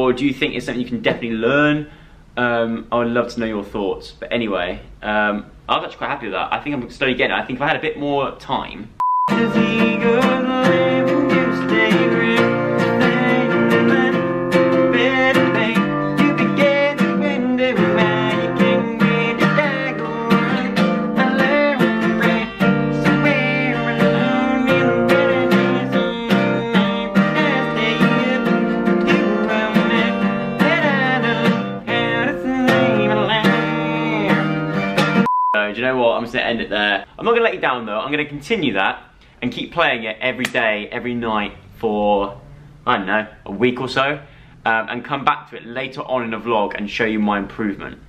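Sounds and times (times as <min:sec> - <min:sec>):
man singing: 0:09.3 - 0:35.2
acoustic guitar strumming chords: 0:09.3 - 0:35.3.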